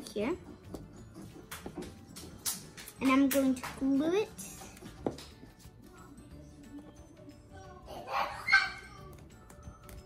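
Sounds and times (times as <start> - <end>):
faint background music: 0.0 - 10.0
child squealing: 8.0 - 9.0.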